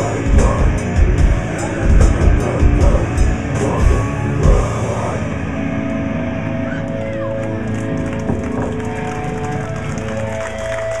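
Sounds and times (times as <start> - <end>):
bass guitar: 0.0 - 11.0
distorted electric guitars: 0.0 - 11.0.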